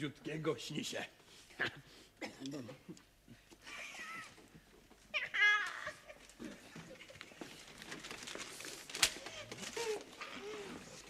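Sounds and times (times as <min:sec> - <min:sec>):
faint knocks and shuffling: 0:03.3 - 0:11.0.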